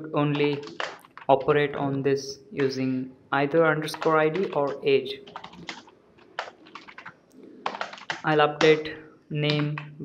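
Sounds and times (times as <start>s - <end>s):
keyboard typing: 0.3s - 1.8s, 2.6s - 2.9s, 3.6s - 10.0s.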